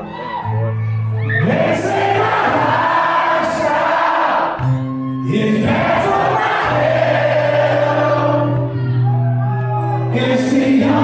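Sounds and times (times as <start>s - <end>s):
crowd singing together: 1.4s - 8.7s, 10.1s - 11.0s.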